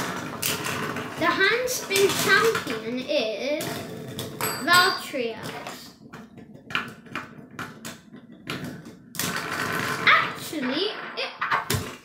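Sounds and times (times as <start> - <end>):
spinning top parts clicking on wood: 0.0 - 3.0.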